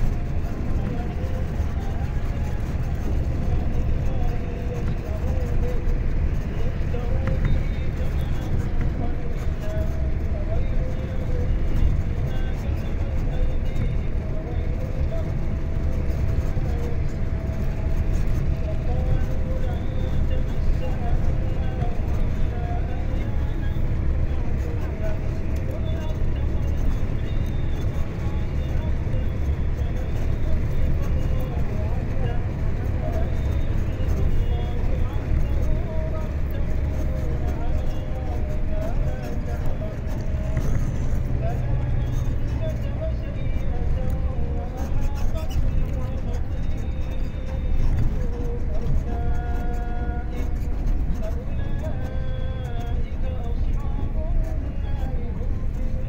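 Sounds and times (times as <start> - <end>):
vehicle road and engine rumble: 0.0 - 56.0.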